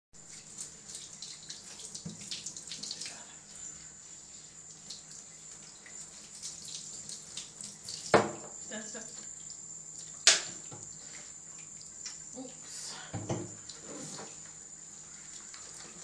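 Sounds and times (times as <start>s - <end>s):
shower water spraying on fur: 0.2s - 16.0s.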